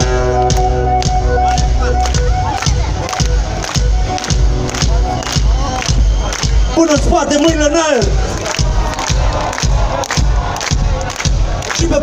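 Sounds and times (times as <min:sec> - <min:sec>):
crowd noise: 0:00.0 - 0:12.0
heavy kick drum beat: 0:00.0 - 0:12.0
live band playing loud music: 0:00.0 - 0:12.0.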